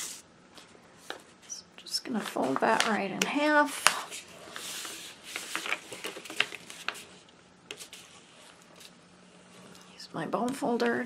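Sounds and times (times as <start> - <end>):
paper envelope rustling: 3.8 - 8.9.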